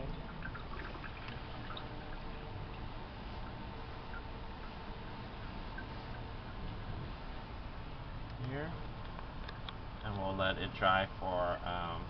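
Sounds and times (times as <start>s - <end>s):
faint drips: 0.0s - 6.8s
steady background hum: 0.0s - 12.0s.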